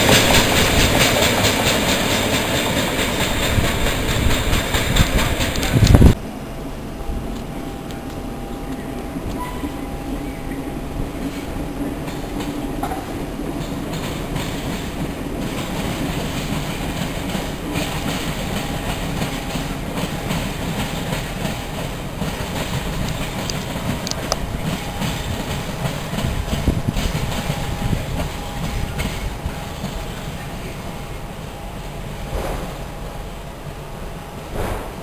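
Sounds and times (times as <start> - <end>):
train wheels clattering over rails: 0.0 - 6.2, 8.1 - 33.3, 34.3 - 35.0.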